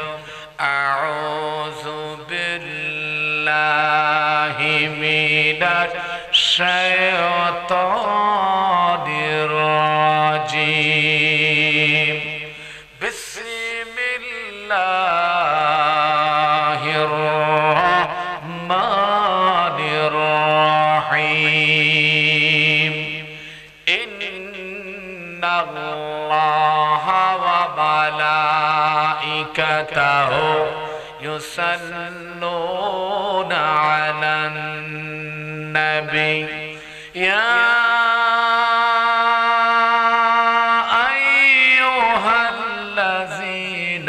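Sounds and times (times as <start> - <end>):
man chanting through microphones: 0.0 - 44.0.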